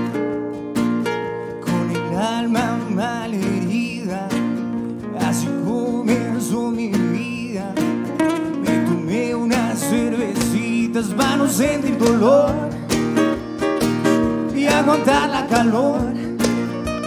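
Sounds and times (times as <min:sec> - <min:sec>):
acoustic guitars strumming: 0:00.0 - 0:17.0
man singing: 0:01.4 - 0:17.0.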